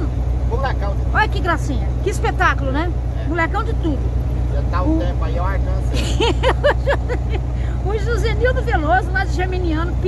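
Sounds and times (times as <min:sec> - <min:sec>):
truck diesel engine droning: 0:00.0 - 0:10.0.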